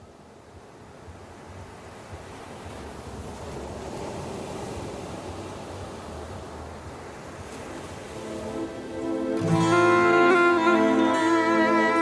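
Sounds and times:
ocean surf on beach: 0:00.0 - 0:12.0.

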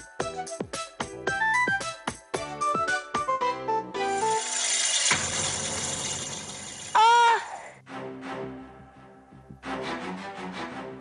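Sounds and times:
crash and clatter of falling objects: 0:04.2 - 0:07.0
boy crying out: 0:07.0 - 0:07.8.

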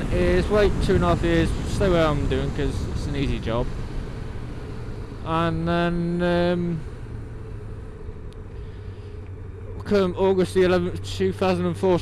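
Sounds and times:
low background rumble: 0:00.0 - 0:12.0
low hum: 0:00.0 - 0:12.0.

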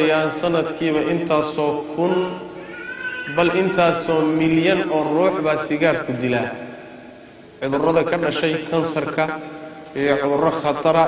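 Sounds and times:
man speaking: 0:00.0 - 0:02.6, 0:03.3 - 0:06.7, 0:07.6 - 0:11.0.

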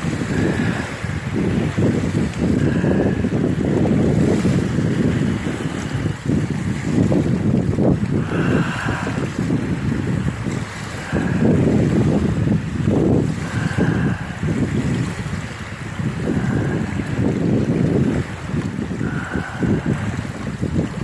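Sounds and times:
small waves washing onto shore: 0:00.0 - 0:21.0
wind buffeting microphone: 0:00.0 - 0:21.0.

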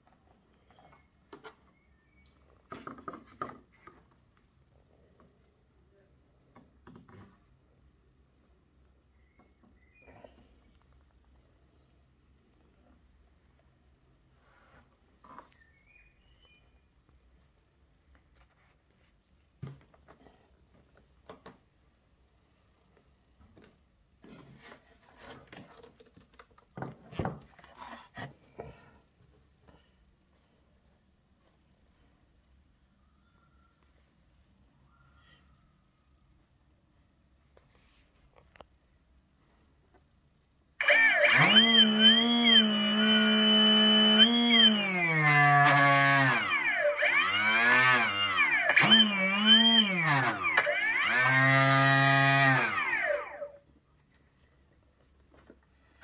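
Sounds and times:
electric motor whining: 0:40.8 - 0:53.6.

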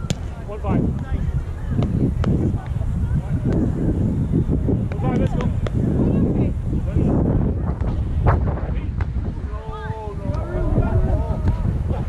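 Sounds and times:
volleyball slaps: 0:00.0 - 0:00.3
wind buffeting microphone: 0:00.0 - 0:12.0.

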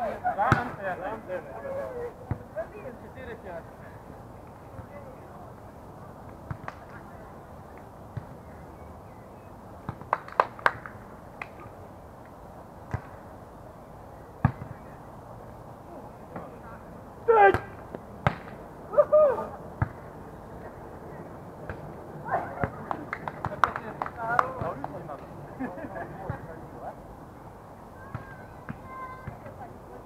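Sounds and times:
players shouting: 0:17.2 - 0:17.8.

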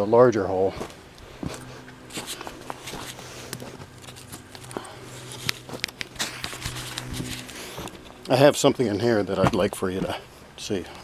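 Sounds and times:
footsteps on rocky dirt: 0:00.6 - 0:10.4.

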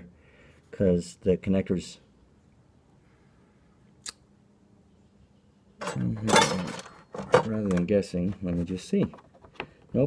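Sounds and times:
man speaking: 0:00.7 - 0:02.1, 0:05.8 - 0:09.2.

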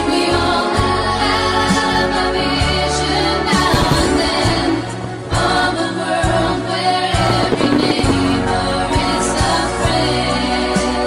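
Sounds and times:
pop song with sung vocals: 0:00.0 - 0:11.0.

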